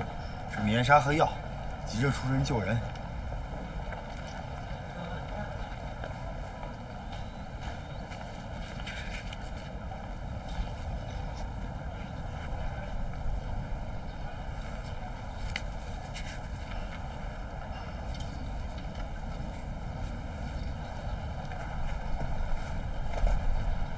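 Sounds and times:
low outdoor rumble: 0.0 - 23.9
rustles: 7.6 - 23.9.

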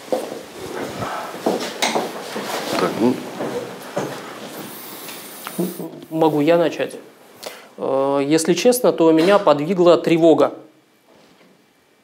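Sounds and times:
rustling: 0.1 - 6.4.

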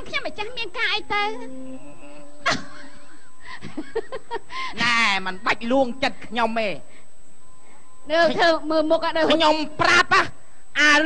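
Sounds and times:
high-pitched whining voice: 1.1 - 3.1.

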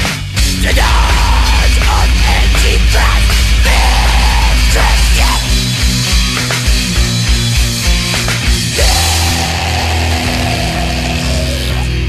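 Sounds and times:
distorted guitars and bass chord: 0.0 - 12.0
high sliding guitar note: 1.0 - 11.8.

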